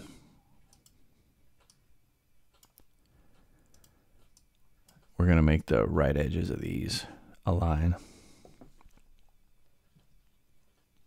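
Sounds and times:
computer mouse clicks: 0.6 - 1.0, 1.6 - 1.8, 2.5 - 5.2.

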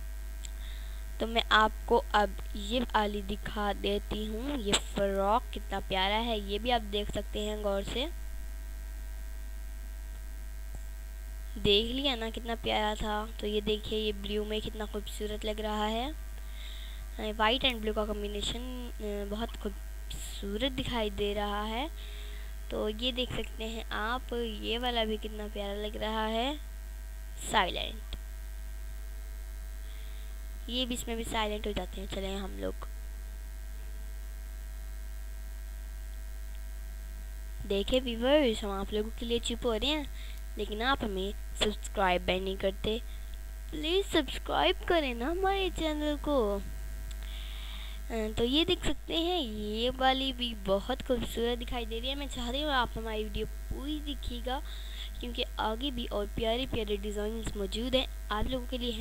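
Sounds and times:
faint steady tones: 0.0 - 59.0
low electrical hum: 0.0 - 59.0.

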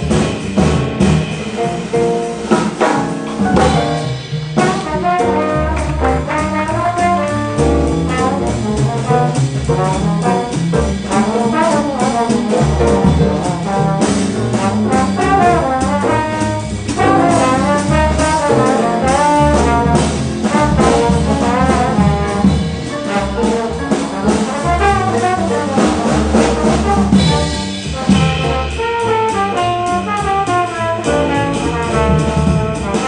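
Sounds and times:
drums with cymbals: 0.0 - 33.0
piano: 0.0 - 33.0
trombone melody: 0.0 - 33.0
upright bass: 0.0 - 33.0.

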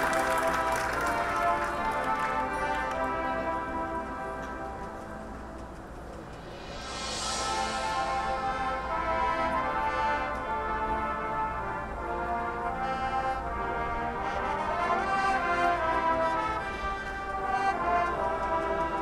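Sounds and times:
marching band brass chords: 0.0 - 19.0.

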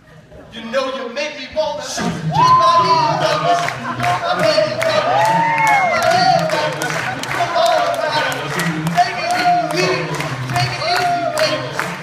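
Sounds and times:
male group low backing vocals: 0.5 - 12.0
male lead voice singing: 0.6 - 12.0.

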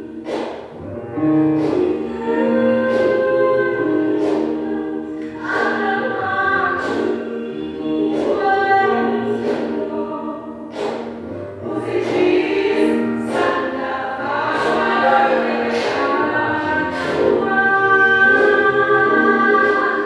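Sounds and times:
choir singing held chords: 0.0 - 20.0.

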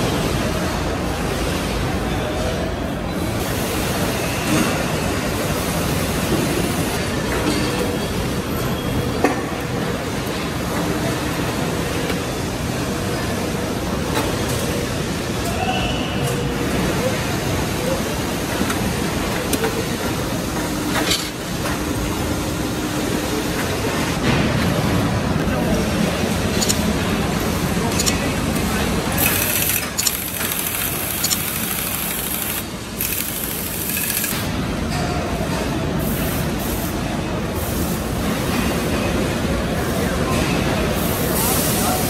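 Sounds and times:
machinery noise: 3.2 - 35.0.

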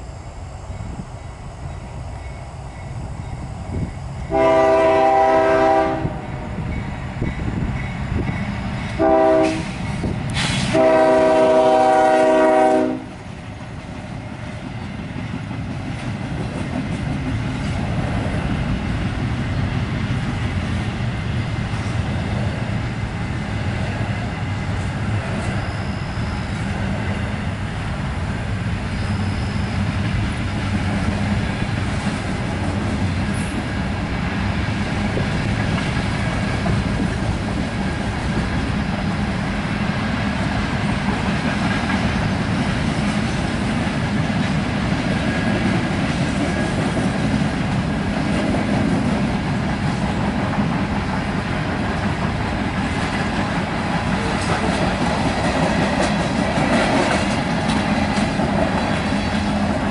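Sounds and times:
freight train cars rolling past: 0.0 - 59.9
locomotive horn blast: 4.3 - 6.4, 9.0 - 9.8, 10.5 - 13.2.

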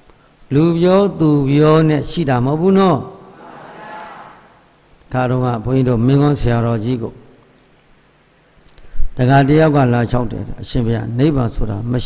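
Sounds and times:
faint drawn-out voiced sound: 3.3 - 4.6.

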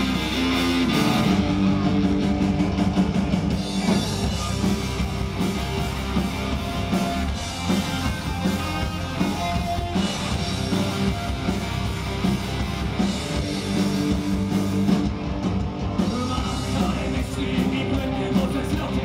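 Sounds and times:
punk rock band playing live: 0.0 - 19.0.

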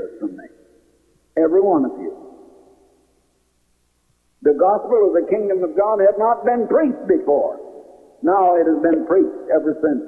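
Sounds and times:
man's voice: 0.0 - 0.5, 1.4 - 2.2, 4.4 - 7.6, 8.2 - 10.0.

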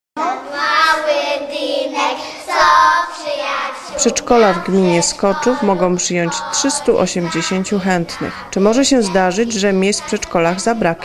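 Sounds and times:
young children singing: 0.2 - 11.0.

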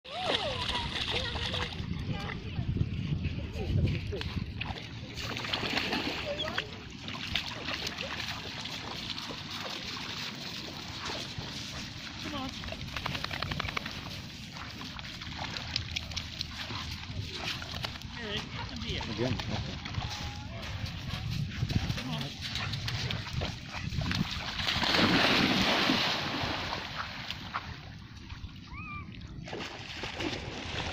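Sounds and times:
dog splashing through water: 4.2 - 30.9.

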